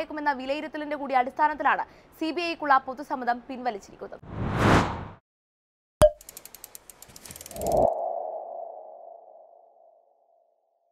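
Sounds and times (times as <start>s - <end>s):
rapid ticks: 6.2s - 7.8s.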